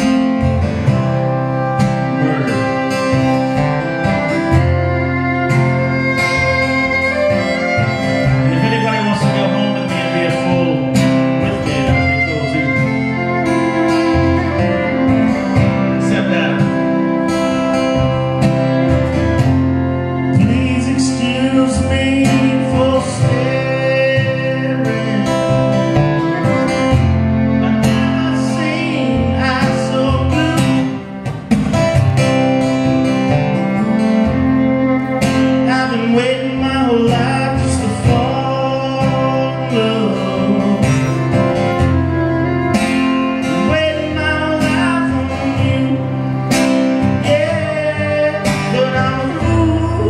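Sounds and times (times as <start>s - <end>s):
acoustic guitars strumming: 0.0s - 50.0s
man singing: 2.0s - 4.5s, 5.2s - 17.8s, 20.1s - 31.1s, 34.7s - 50.0s.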